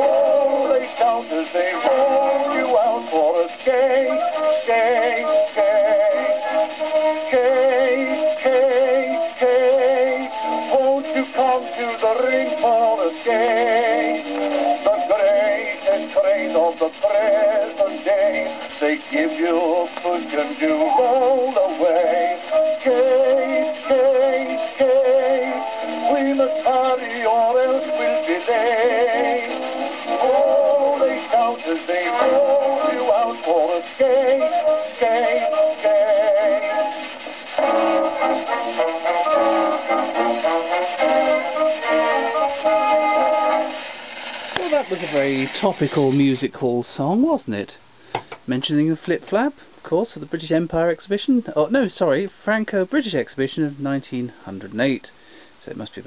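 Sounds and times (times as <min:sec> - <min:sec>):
baritone voice singing with vibrato: 0:00.0 - 0:44.0
band accompaniment: 0:00.0 - 0:46.5.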